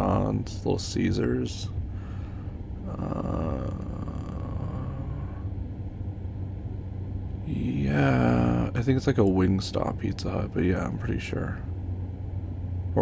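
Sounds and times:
man speaking: 0.0 - 1.7, 7.4 - 11.6.

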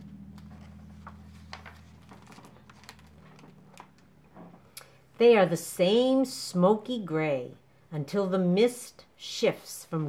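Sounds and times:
low hum: 0.0 - 5.5
book pages clicking: 0.3 - 4.1.

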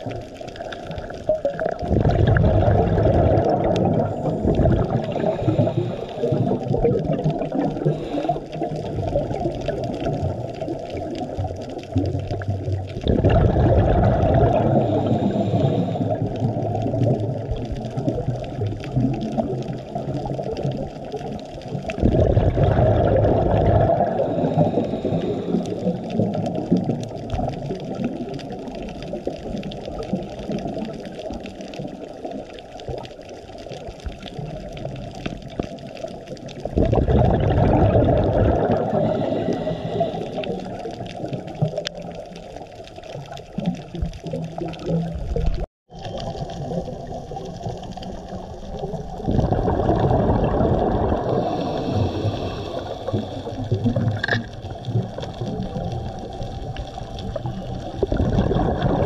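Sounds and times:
underwater regulator bubbles: 0.0 - 59.0
water noise: 0.0 - 59.0.

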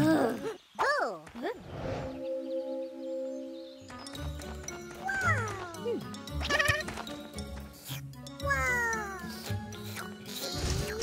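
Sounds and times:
cartoon background music: 2.2 - 11.0
cartoon character vocalisations: 8.4 - 9.4.

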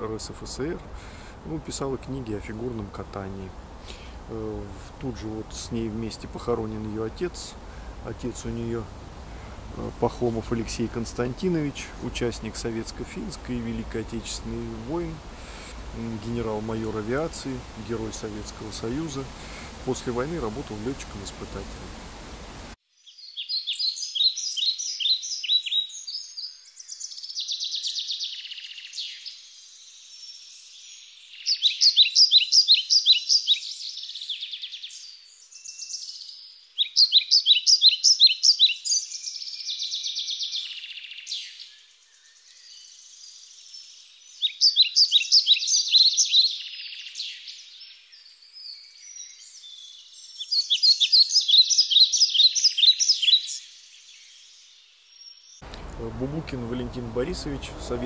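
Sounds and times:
soft bird chirping: 23.0 - 55.8
songbird trilling: 23.1 - 29.4, 30.1 - 54.3.

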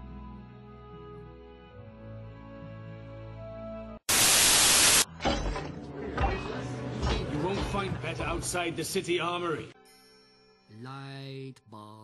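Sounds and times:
soft music with held notes: 0.0 - 4.0
static hiss burst: 4.1 - 5.1.

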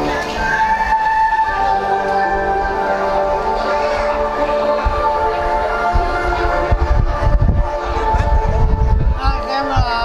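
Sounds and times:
music with long held chords: 0.0 - 10.0.

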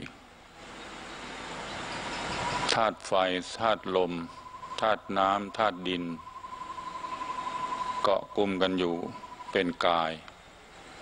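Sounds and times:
faint hiss: 0.0 - 11.0
insect trilling: 2.0 - 10.1.

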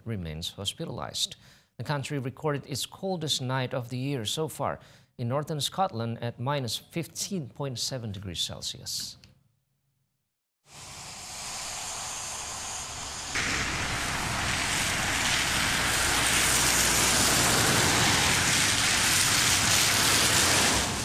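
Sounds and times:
tyres hissing on wet road: 10.7 - 21.0
car passing: 11.4 - 21.0.

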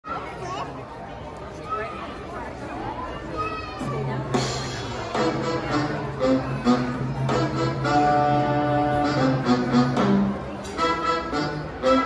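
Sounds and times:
indistinct spectator chatter: 0.1 - 12.0.

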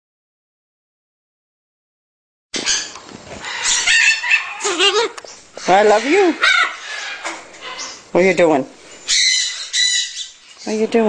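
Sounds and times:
baby macaws squawking and chattering: 2.6 - 11.0.

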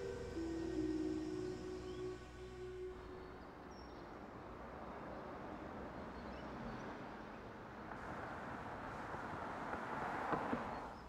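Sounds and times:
faint high chirps: 0.0 - 4.1
soft held music notes: 0.0 - 4.2
outdoor background hiss: 0.0 - 6.4.

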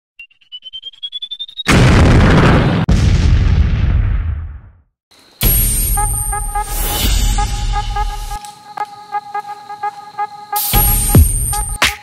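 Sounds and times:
explosion boom with deep rumble: 1.7 - 4.9.

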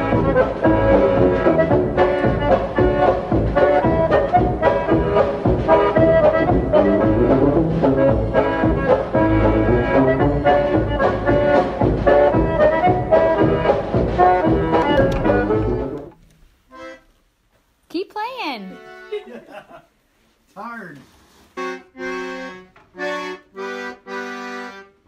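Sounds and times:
accordion music: 0.0 - 17.2, 18.2 - 19.5, 21.5 - 25.0.

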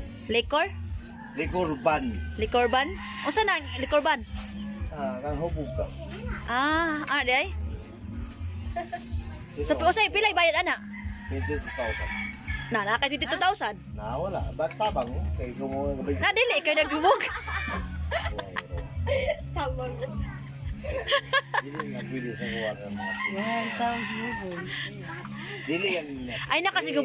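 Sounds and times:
voices: 0.0 - 27.0
rooster crowing: 1.0 - 4.2, 10.8 - 13.4, 22.2 - 26.2.

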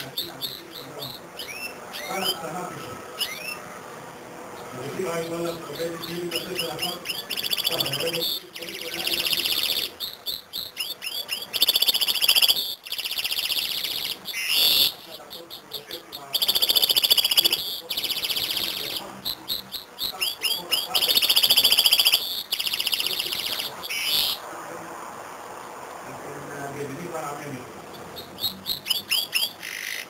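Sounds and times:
bird singing buzzy trilled song: 0.0 - 24.4, 27.8 - 30.0.

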